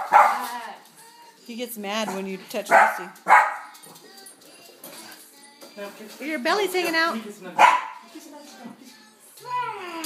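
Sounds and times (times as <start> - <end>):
dog barking: 0.0 - 0.5, 2.7 - 3.7, 7.6 - 8.0.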